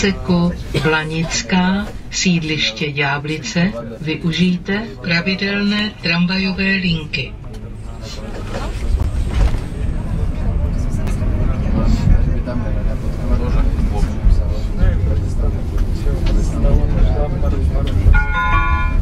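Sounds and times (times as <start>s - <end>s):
faint passenger voices: 0.0s - 19.0s
tram wheels rumbling: 0.0s - 19.0s
multi-tone chime: 18.2s - 19.0s.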